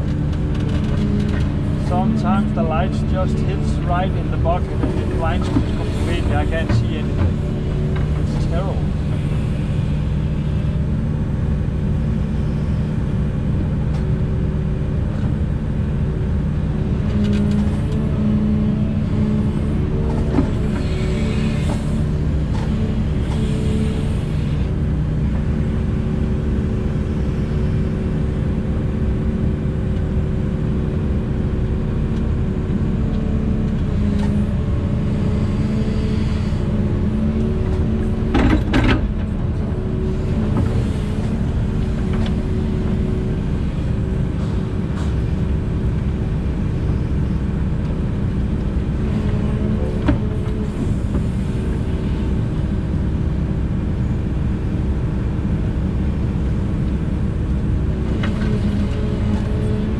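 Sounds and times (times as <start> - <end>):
excavator engine and hydraulics: 0.0 - 59.9.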